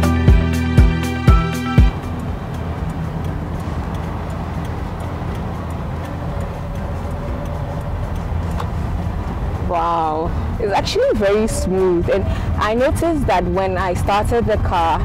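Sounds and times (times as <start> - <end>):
background music with a steady beat: 0.0 - 14.0
car cabin low rumble: 0.0 - 15.0.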